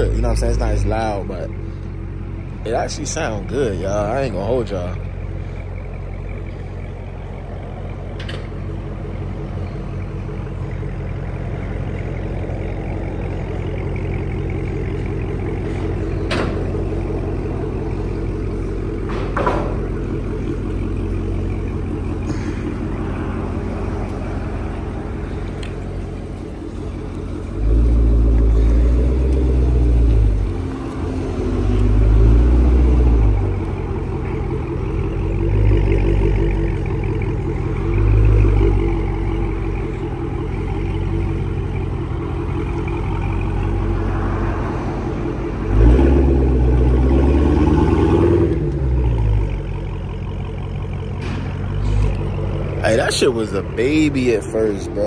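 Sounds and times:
supercharged car engine revving: 0:09.1 - 0:55.0.

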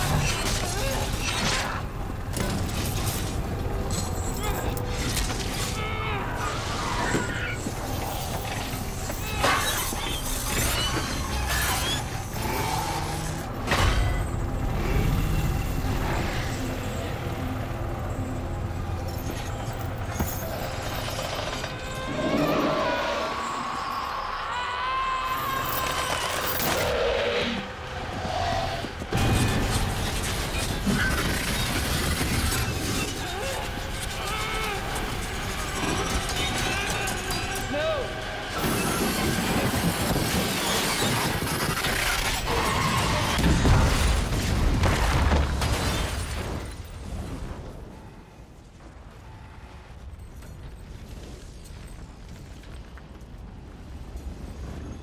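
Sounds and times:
loud continuous rumbling: 0:00.0 - 0:22.2, 0:25.6 - 0:49.7
short gliding squeals: 0:19.1 - 0:28.8.

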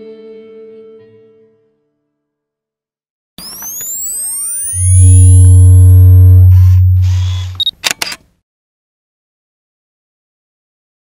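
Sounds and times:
synthesized sweeping tones: 0:03.4 - 0:07.6
sharp clicks: 0:06.6 - 0:08.3.

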